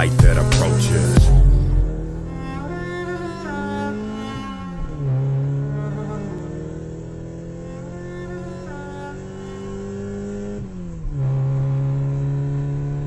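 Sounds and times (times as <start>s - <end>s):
car engine accelerating: 0.0s - 13.0s.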